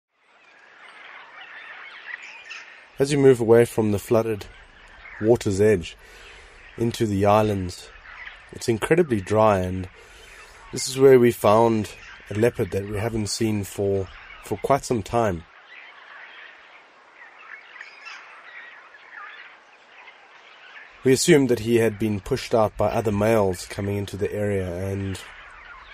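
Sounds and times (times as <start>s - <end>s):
birds chirping and trilling: 0.1s - 25.9s
outdoor background hiss: 0.2s - 25.9s.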